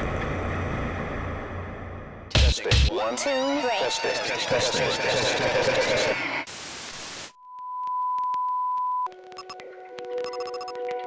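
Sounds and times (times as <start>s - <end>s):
static hiss: 6.4s - 7.4s
pure test tone: 10.2s - 10.7s.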